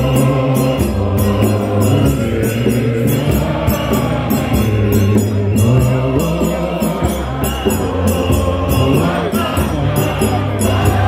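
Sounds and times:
men's choir singing a hymn: 0.0s - 11.0s.

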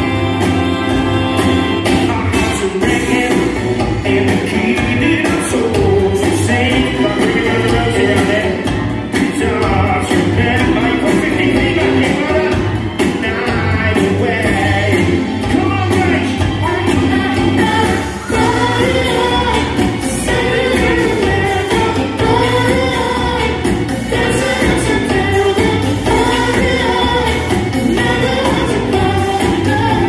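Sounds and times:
dance-pop backing track: 0.0s - 30.0s
man singing into microphone: 2.2s - 12.6s.

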